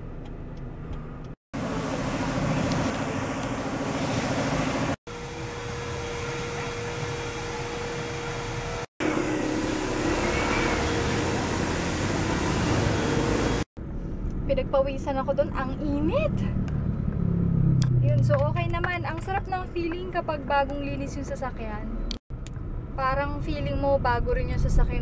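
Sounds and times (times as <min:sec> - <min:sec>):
motor hum: 0:00.0 - 0:13.6
car wash machinery hiss: 0:01.6 - 0:13.7.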